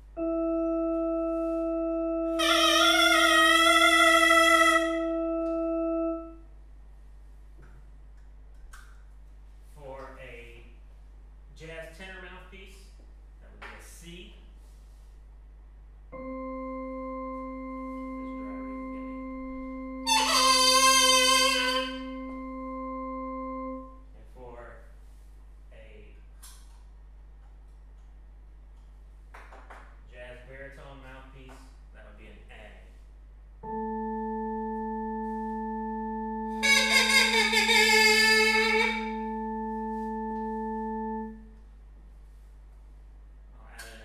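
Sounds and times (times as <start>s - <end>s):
electronic drone tone: 0.0s - 6.4s, 16.2s - 24.0s, 33.6s - 41.6s
loud bright sustained note: 0.2s - 6.4s, 16.2s - 23.9s, 33.6s - 41.5s.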